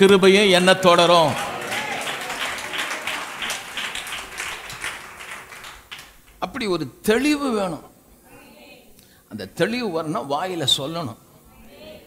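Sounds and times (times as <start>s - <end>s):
congregation applauding: 0.0s - 6.5s.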